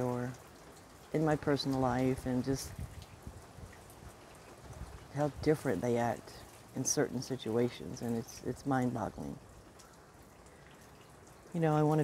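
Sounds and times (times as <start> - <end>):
faint rain falling: 0.0 - 12.0.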